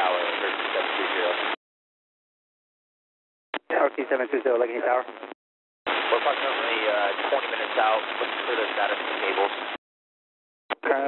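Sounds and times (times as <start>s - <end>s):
voice over radio: 0.0s - 1.4s, 3.6s - 5.1s, 5.9s - 9.7s, 10.7s - 11.0s
radio hiss: 0.0s - 1.6s, 3.6s - 5.3s, 5.9s - 9.8s.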